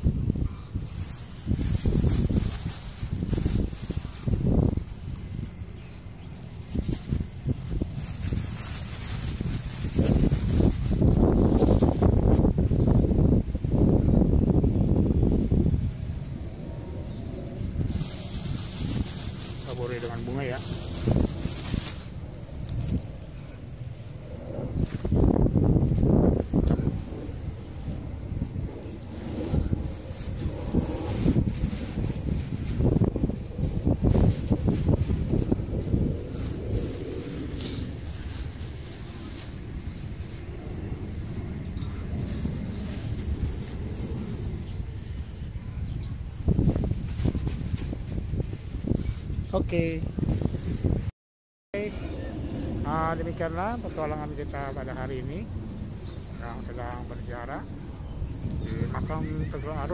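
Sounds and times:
wind buffeting microphone: 0.0 - 51.1, 51.8 - 59.9.

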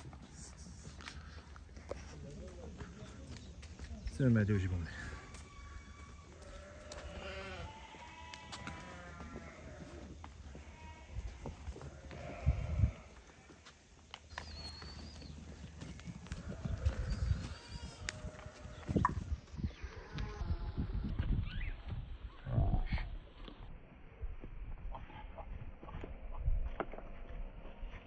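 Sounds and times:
sheep bleating: 5.3 - 13.7, 16.3 - 18.8.

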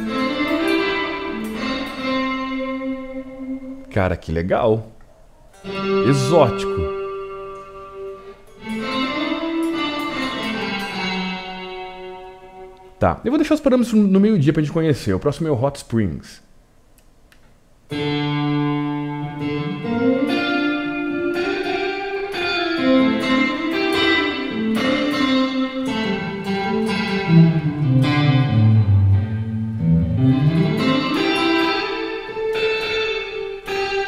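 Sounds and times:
electric guitar with heavy reverb: 0.0 - 4.0, 5.2 - 13.0, 17.9 - 34.0.

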